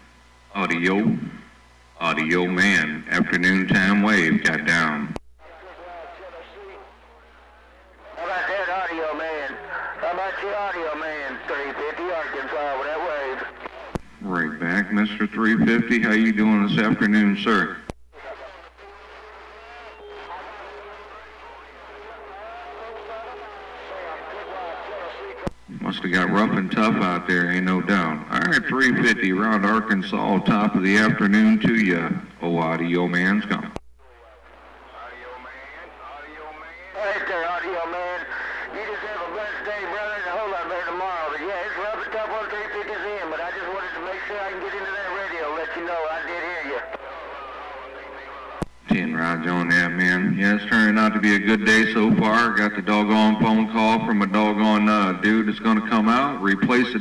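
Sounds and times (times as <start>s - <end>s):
radio static hiss: 0.0s - 57.0s
faint man's voice over radio: 2.0s - 57.0s.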